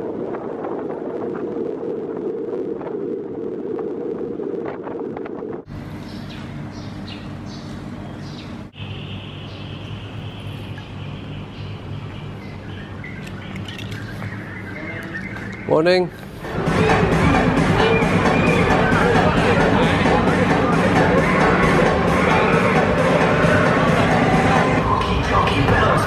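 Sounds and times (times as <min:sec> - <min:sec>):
low hum: 0:00.0 - 0:26.0
vehicle engine and road rumble: 0:00.0 - 0:26.0
high-pitched drone: 0:16.4 - 0:26.0.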